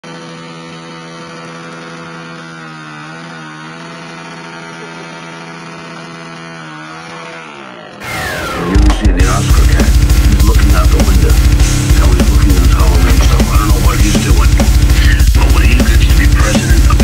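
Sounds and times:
dirt bike engine revving: 0:00.0 - 0:17.0
wheel spinning in dirt: 0:00.0 - 0:17.0.

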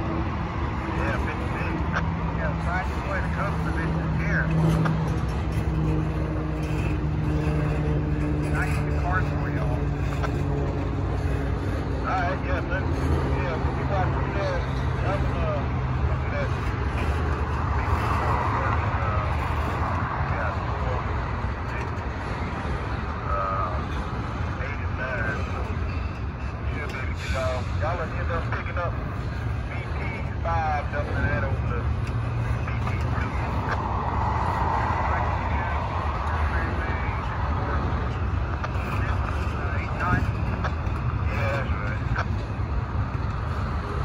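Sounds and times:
low hum: 0:00.0 - 0:44.0.

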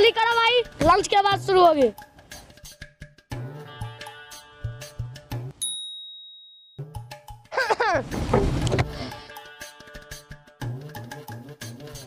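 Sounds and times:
background music with drums: 0:00.0 - 0:05.5, 0:06.8 - 0:12.0
high bell-like ding: 0:05.6 - 0:06.8.

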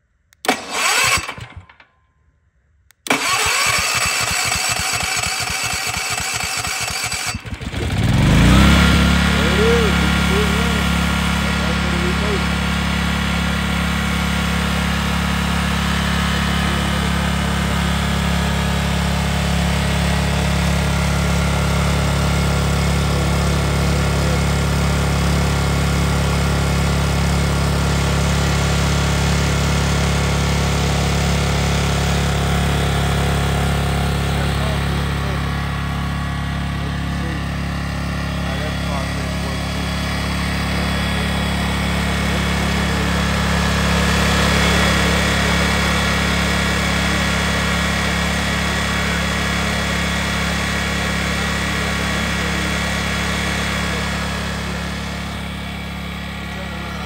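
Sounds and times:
generator engine running: 0:00.4 - 0:01.8, 0:03.0 - 0:57.0.

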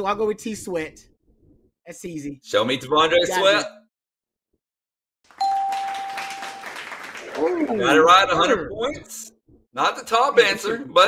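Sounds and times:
game show ding: 0:05.4 - 0:07.0.

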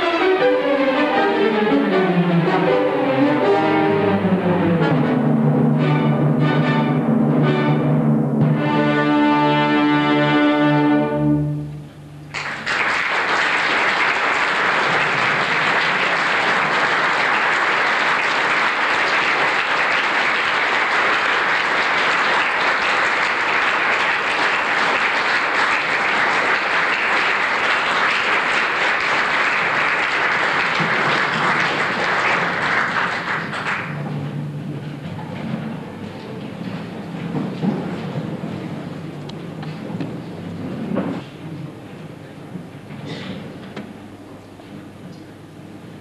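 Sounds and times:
audience applause: 0:12.3 - 0:34.2.

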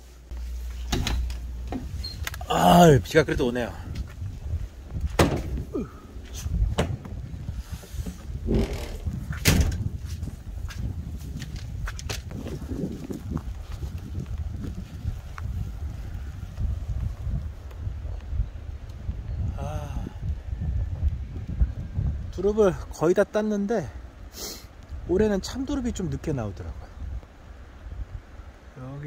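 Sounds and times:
wind rumbling on microphone: 0:00.0 - 0:29.0
microphone handling knocks: 0:04.9 - 0:05.8, 0:06.4 - 0:12.5.

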